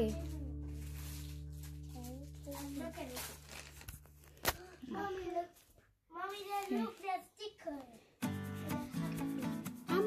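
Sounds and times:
packaging rustling and tearing: 0.0 - 4.8.

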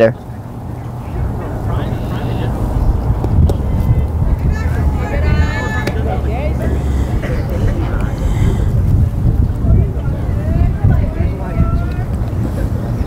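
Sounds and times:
wind rumbling on microphone: 0.0 - 13.0
players calling out: 0.2 - 8.9.

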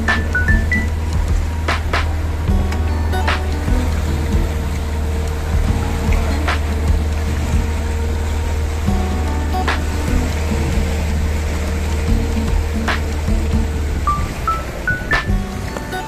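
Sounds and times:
background music: 0.0 - 16.0
boat engine drone: 0.0 - 16.0.

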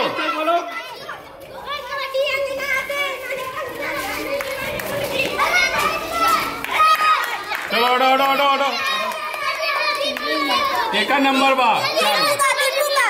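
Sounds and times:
children shouting: 0.0 - 13.0.

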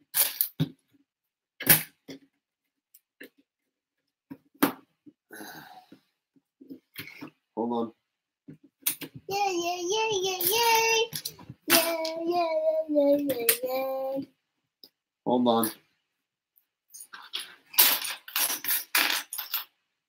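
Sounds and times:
small child sing-song vocalizing: 9.2 - 14.4.

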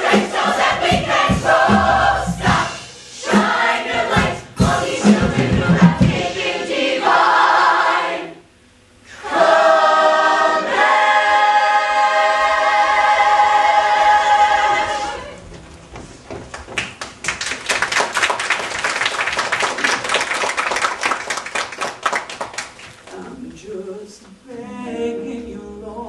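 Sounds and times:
choir singing: 0.0 - 8.5, 9.1 - 15.4, 24.5 - 26.0.

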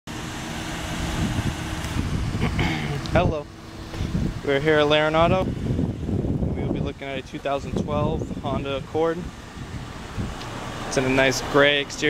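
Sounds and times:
road traffic rumble: 0.1 - 12.0.

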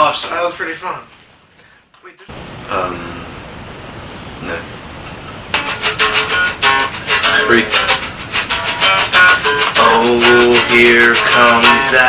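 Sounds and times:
faint room hiss: 0.0 - 12.0
acoustic guitar strummed fast: 5.6 - 12.0.

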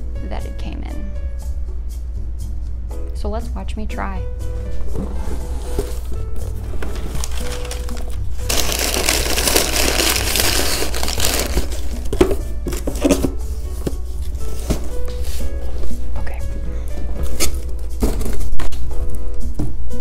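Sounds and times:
background music: 0.0 - 20.0
items clattering in a box: 4.9 - 13.4
packing material crinkling: 6.8 - 12.2.

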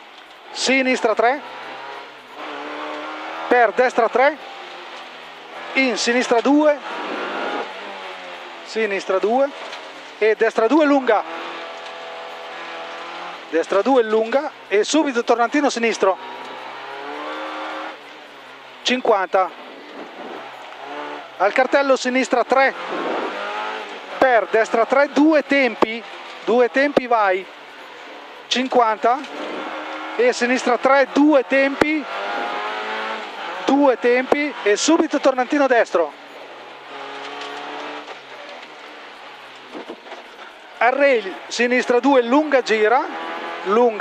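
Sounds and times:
rally car engine from inside cabin: 0.0 - 44.0
road noise: 0.0 - 44.0.

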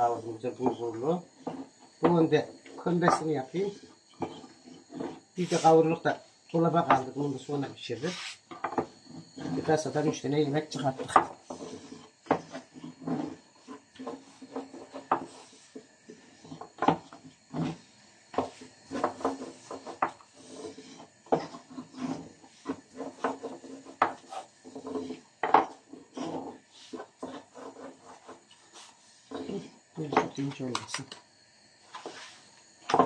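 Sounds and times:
rolling pin rolling dough: 0.0 - 30.8, 31.8 - 33.0.

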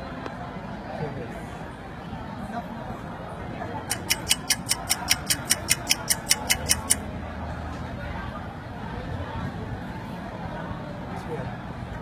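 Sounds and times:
faint murmur of voices: 0.0 - 12.0
rapid ticking: 3.9 - 7.0.

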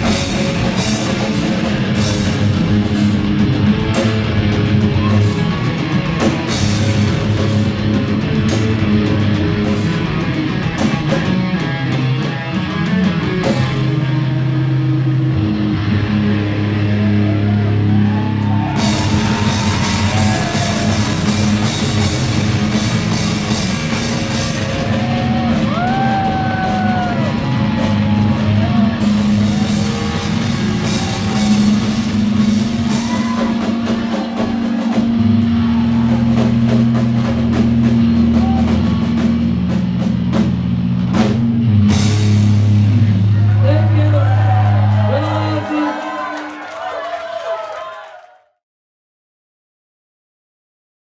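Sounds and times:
drum kit beat: 0.0 - 14.2, 18.4 - 46.2
distorted electric guitar and bass chord: 0.0 - 45.2.

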